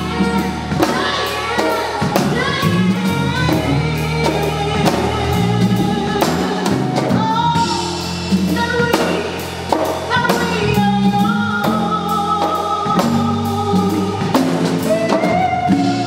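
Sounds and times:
bass: 0.0s - 16.0s
drum kit: 0.0s - 16.0s
woman singing: 0.0s - 16.0s.

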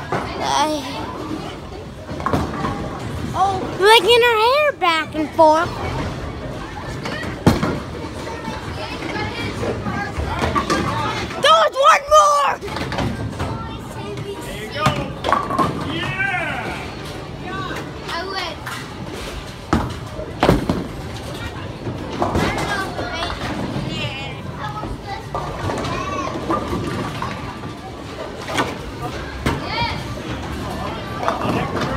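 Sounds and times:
children's voices chattering: 0.0s - 15.2s, 21.2s - 31.9s.

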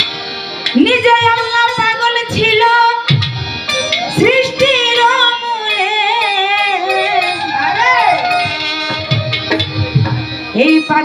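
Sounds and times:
woman singing through pa system: 4.1s - 9.2s.

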